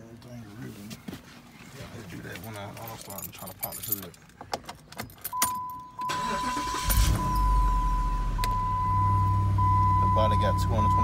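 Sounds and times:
car engine cranking and idling: 4.0 - 11.0
high warning chime: 5.3 - 11.0.

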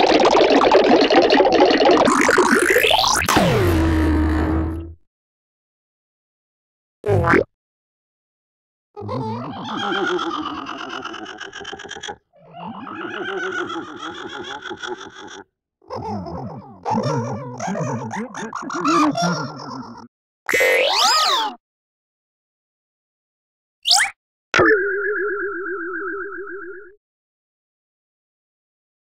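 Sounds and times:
warbling cartoon sound effects: 0.0 - 4.0, 23.9 - 27.0.

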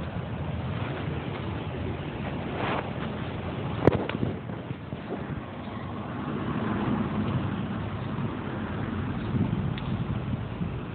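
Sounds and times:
outdoor background noise: 0.0 - 10.9.

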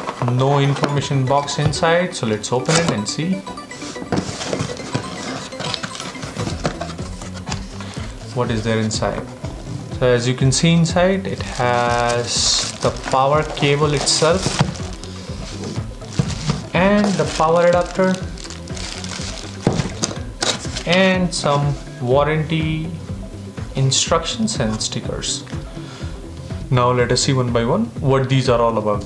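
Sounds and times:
background music: 0.0 - 29.0
plastic bag crinkling: 11.4 - 20.1.

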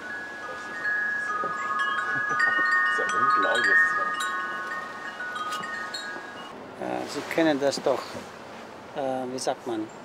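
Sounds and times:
wind chime ringing: 0.0 - 6.6.

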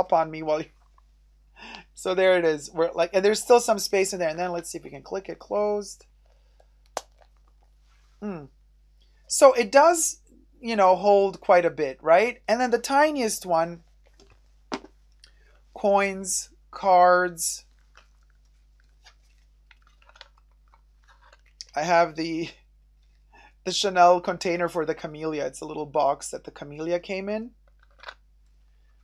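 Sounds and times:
faint clicks handling pouch: 6.6 - 7.7.

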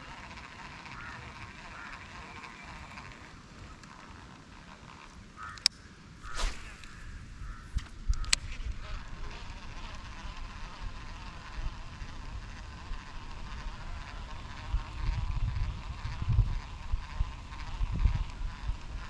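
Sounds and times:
steady buzzing drone: 0.0 - 19.0.

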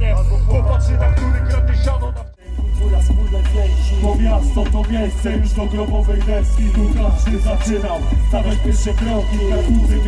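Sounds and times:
heavy bass beat: 0.0 - 10.0
person rapping: 0.0 - 10.0.

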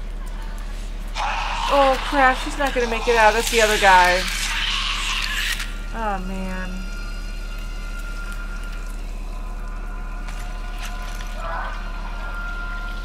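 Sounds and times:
quiet steady hum: 0.0 - 13.0.

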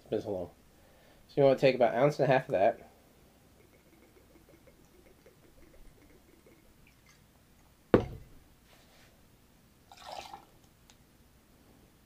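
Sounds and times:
liquor trickling into metal jigger: 3.5 - 7.3, 9.9 - 10.5
glass bottle knocked on counter: 8.0 - 8.4.

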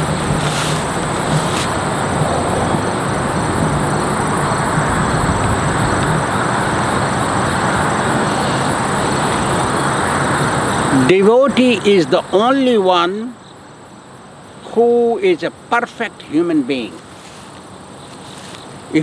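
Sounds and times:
steady rushing noise: 0.0 - 12.2.

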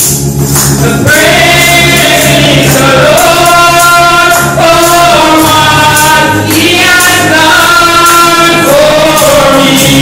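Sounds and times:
instrumental backing: 0.0 - 10.0
steady percussive beat: 0.0 - 10.0
woman singing into microphone: 1.0 - 10.0.

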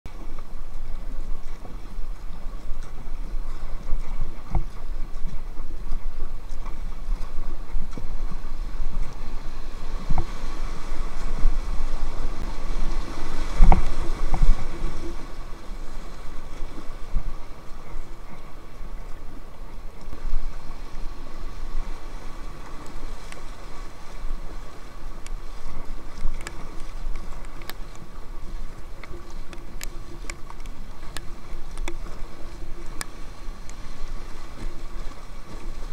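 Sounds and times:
wind buffeting microphone: 0.0 - 35.9
river water rushing and splashing: 0.1 - 35.9.

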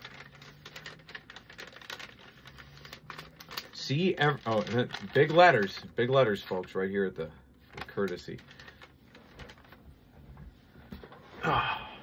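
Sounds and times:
paper shuffling and crackling: 0.0 - 11.3.

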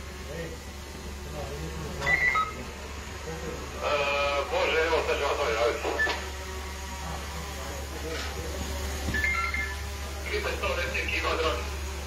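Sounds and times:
short electronic beeps: 2.0 - 2.6, 9.2 - 9.8.

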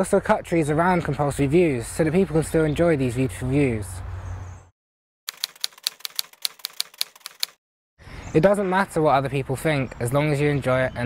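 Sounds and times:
typewriter key clacks: 5.3 - 7.6.

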